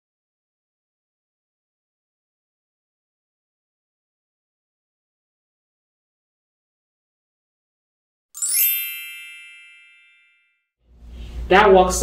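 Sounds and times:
bright chime ding: 0:08.4 - 0:10.5.

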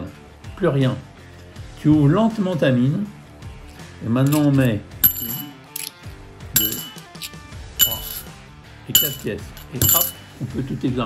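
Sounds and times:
coins clinking: 0:04.2 - 0:06.0, 0:06.6 - 0:08.3, 0:09.0 - 0:10.4.

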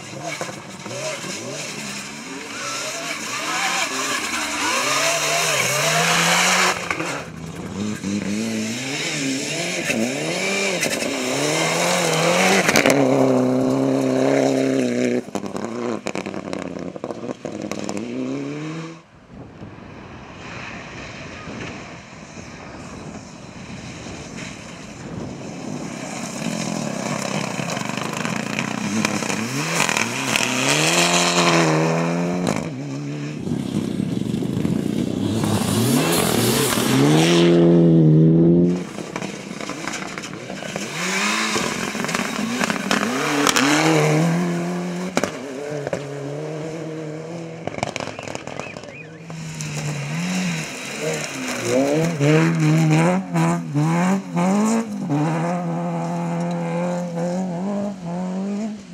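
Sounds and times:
second rally car engine revving: 0:00.0 - 0:19.1, 0:26.4 - 0:58.9
rally car engine at full throttle: 0:00.0 - 0:58.9
gravel spraying: 0:20.2 - 0:31.2, 0:47.6 - 0:55.1.

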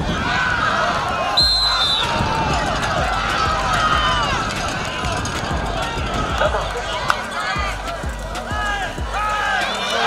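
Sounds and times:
crowd noise: 0:00.0 - 0:10.0
people calling out and talking: 0:00.0 - 0:10.0.

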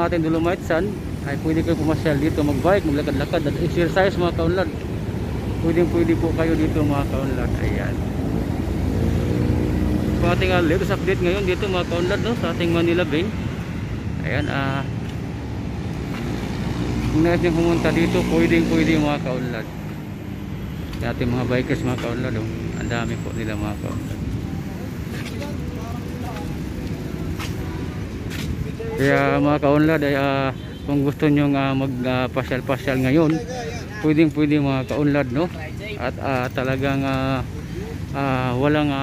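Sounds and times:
vehicle engine: 0:00.0 - 0:30.3
low rumble of traffic: 0:00.0 - 0:39.0
man's voice: 0:28.6 - 0:39.0.

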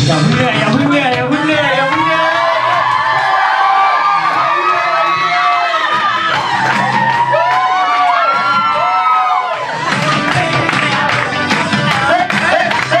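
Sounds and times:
background music: 0:00.0 - 0:13.0
teenagers cheering and shrieking: 0:01.5 - 0:10.1.

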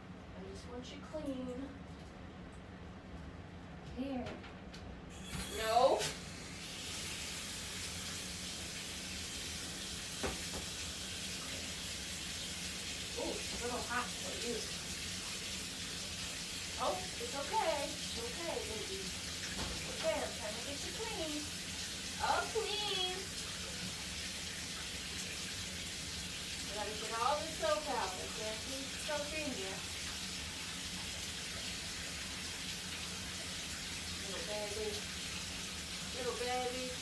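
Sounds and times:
shower water spraying into bathtub: 0:05.1 - 0:37.0.

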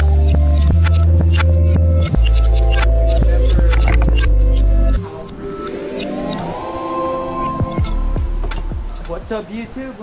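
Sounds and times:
rising synth sweep: 0:00.0 - 0:09.0
sustained synth chords: 0:00.0 - 0:09.3
background music with bass and beat: 0:00.0 - 0:09.4.

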